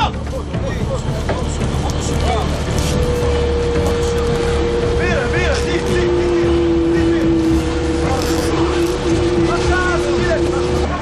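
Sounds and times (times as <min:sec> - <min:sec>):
boat engine running: 0:00.0 - 0:11.0
lower machine whine: 0:00.1 - 0:11.0
machine whine: 0:00.9 - 0:11.0.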